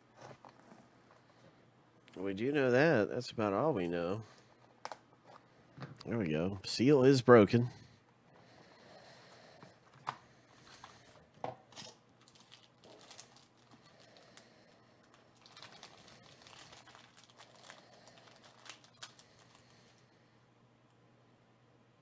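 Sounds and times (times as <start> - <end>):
plastic wrapper crinkling: 11.7 - 20.0.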